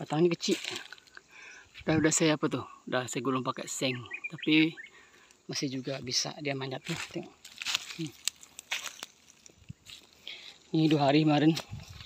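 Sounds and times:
footsteps crunching dry leaves: 0.0s - 1.1s, 6.7s - 12.0s.

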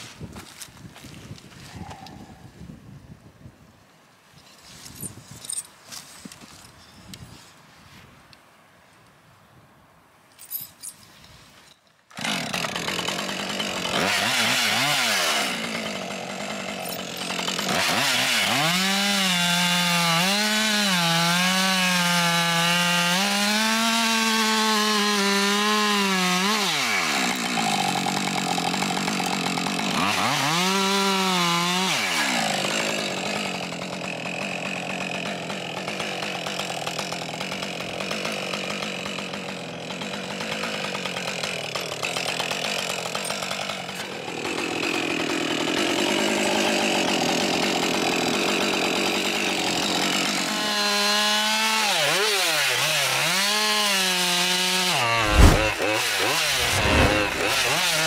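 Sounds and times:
chainsaw cutting wood: 12.1s - 58.0s.

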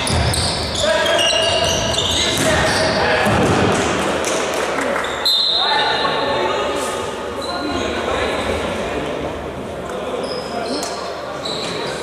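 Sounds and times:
high whistle tone: 5.2s - 5.7s.

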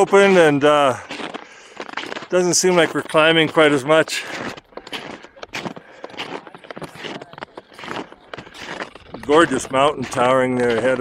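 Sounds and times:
snowshoe footsteps crunching snow: 0.0s - 11.0s.

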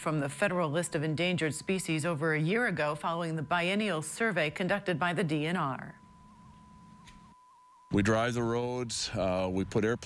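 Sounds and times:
faint high electronic tone: 0.0s - 10.0s
man speaking: 7.9s - 10.0s.

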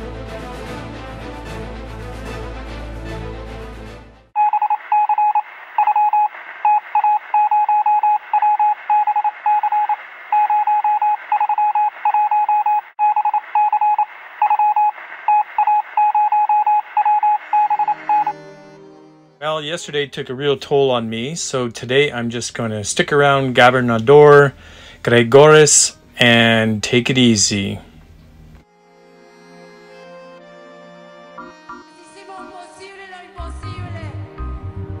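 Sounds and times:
music: 0.0s - 4.4s, 17.6s - 21.8s, 28.6s - 35.0s
morse code beeping: 4.4s - 18.4s.

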